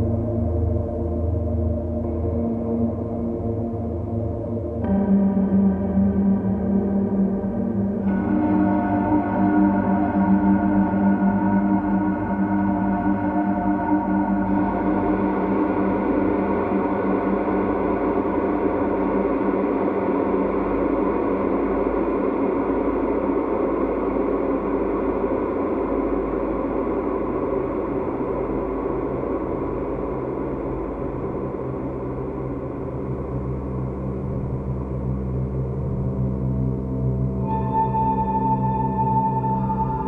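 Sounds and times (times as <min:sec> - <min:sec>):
bowed metal noisebox: 0:00.0 - 0:40.0
synthesizer drone: 0:00.0 - 0:40.0.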